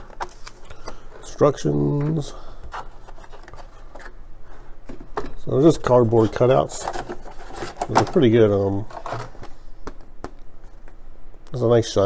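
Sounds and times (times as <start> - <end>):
cardboard rustling and scraping: 0.0 - 10.0.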